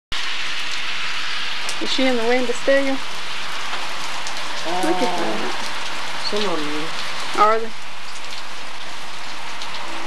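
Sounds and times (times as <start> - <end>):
hail falling: 0.6 - 10.0
person speaking: 4.6 - 5.6.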